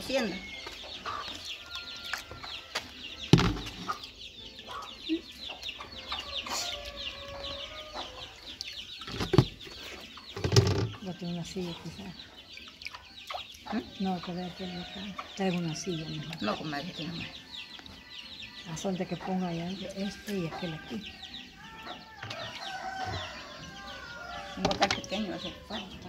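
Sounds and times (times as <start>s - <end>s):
hens clucking: 0.0s - 17.2s
chicks peeping: 0.0s - 26.0s.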